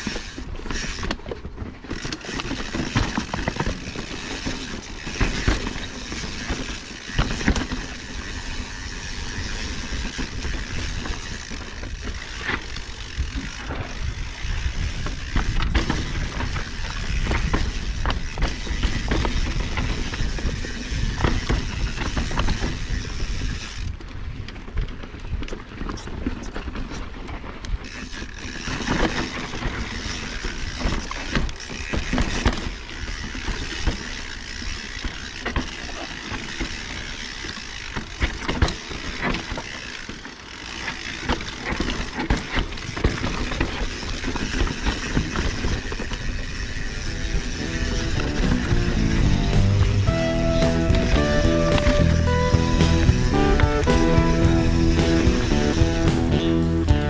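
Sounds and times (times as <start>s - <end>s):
bike knocking and rattling: 0.0s - 57.0s
bike tyres crunching over gravel: 0.0s - 57.0s.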